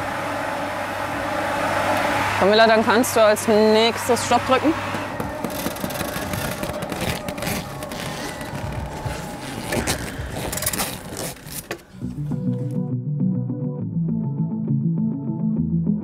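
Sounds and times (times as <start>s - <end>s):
treadmill rushing noise: 4.8s - 11.8s
knocks and clatter: 4.8s - 11.9s
guitar music: 11.9s - 16.0s.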